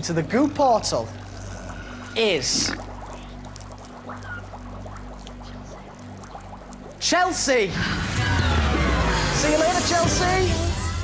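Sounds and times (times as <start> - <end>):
low suspense drone: 0.0 - 7.0, 7.6 - 11.0
faint fizzing crackle: 0.0 - 8.7.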